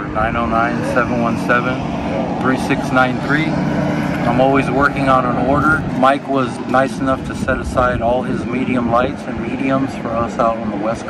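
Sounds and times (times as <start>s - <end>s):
low engine drone: 0.0s - 11.0s
man talking: 0.0s - 11.0s.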